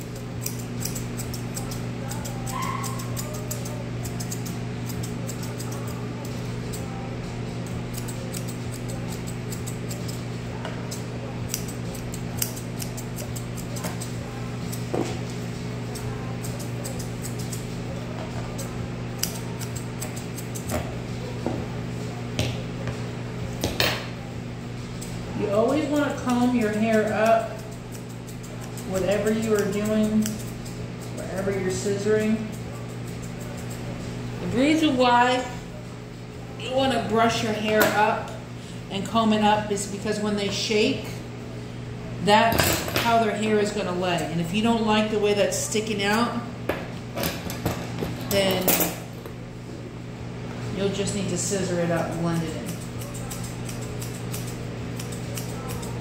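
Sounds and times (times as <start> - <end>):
grooming shears snipping hair: 0.0 - 21.4, 24.8 - 35.2, 50.8 - 56.0
steady low hum: 0.0 - 56.0.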